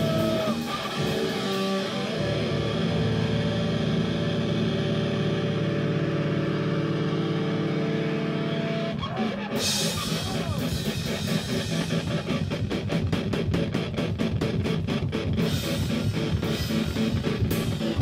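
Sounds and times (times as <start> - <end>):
drums: 0.0 - 18.0.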